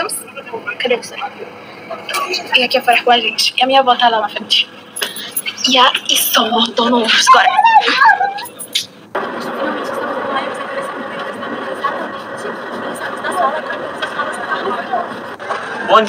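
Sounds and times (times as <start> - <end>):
tv news voice from tablet: 0.0 - 7.5
background hubbub: 0.0 - 16.0.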